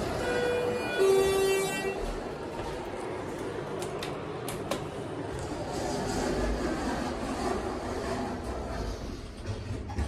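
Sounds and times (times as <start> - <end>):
elevator two-tone chime: 0.1 - 2.0.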